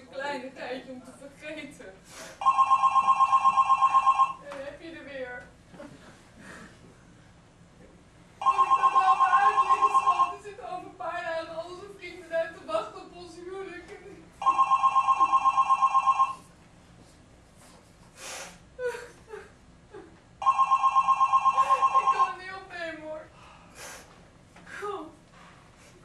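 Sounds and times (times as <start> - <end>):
telephone two-tone trilling ring: 2.4 - 4.4, 8.4 - 10.4, 14.4 - 16.4, 20.4 - 22.3.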